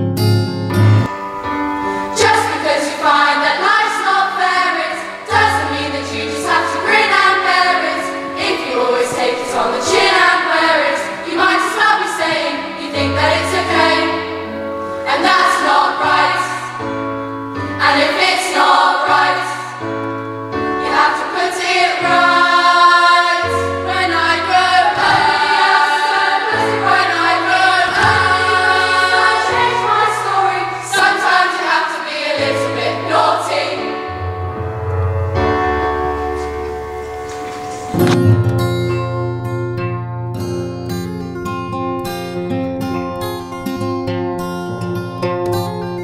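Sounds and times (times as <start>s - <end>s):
low bass accompaniment: 0.0s - 1.1s
girls' choir singing: 2.1s - 19.9s, 20.6s - 34.2s.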